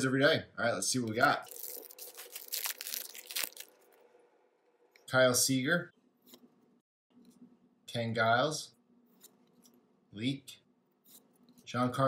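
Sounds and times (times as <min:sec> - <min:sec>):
wrapper crinkling and tearing: 0:01.4 - 0:04.1.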